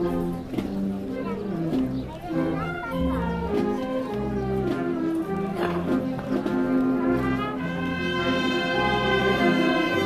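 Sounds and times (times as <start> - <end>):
wind band playing slow march: 0.0 - 10.0.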